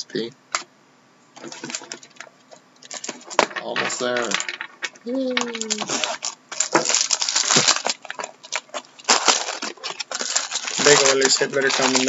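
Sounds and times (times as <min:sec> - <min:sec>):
plastic wrap crinkling: 0:01.4 - 0:12.0.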